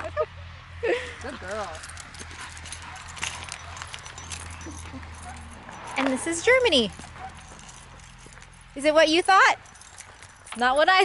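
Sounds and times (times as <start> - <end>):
footsteps crunching on asphalt: 1.3 - 11.0.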